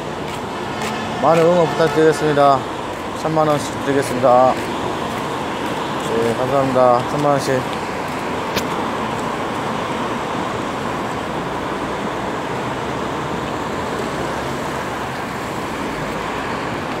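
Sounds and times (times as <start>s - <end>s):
road traffic rushing: 0.0s - 17.0s.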